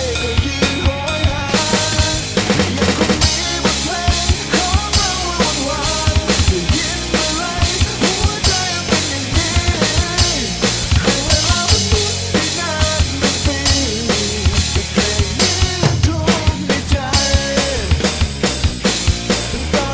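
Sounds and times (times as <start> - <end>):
rock song with singing: 0.0 - 19.9
sampled drum kit rock beat: 0.0 - 19.9.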